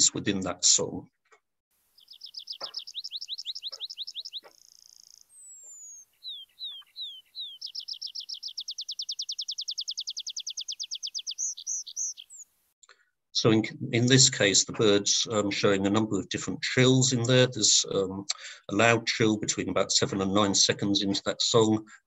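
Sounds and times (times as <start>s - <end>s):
bird song with trills: 2.0s - 12.5s.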